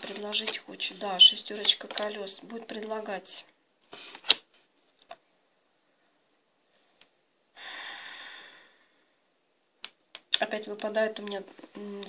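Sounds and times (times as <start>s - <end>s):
cards shuffling: 0.0s - 2.4s, 3.9s - 5.2s.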